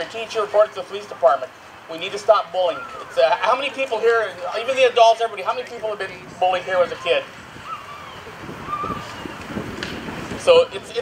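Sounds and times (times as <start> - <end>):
faint crowd voices: 2.0 - 9.6
wind on microphone: 5.7 - 11.0.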